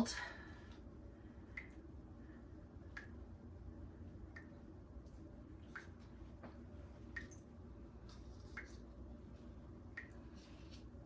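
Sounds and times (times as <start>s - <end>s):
low room hum: 0.0s - 11.0s
paint dripping onto table: 5.7s - 8.9s.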